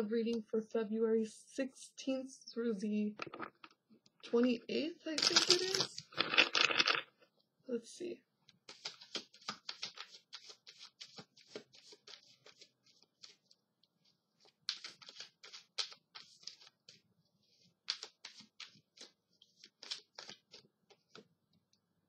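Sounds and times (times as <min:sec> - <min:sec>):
cards being shuffled: 0:03.2 - 0:03.8, 0:05.2 - 0:07.1, 0:08.6 - 0:13.6, 0:14.4 - 0:21.3.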